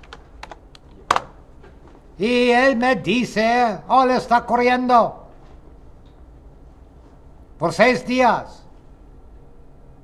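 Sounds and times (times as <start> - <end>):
computer keyboard typing: 0.0 - 1.3.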